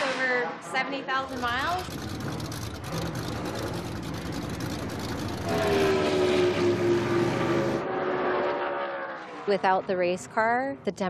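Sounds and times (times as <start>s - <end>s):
race car engine at speed: 0.9s - 11.0s.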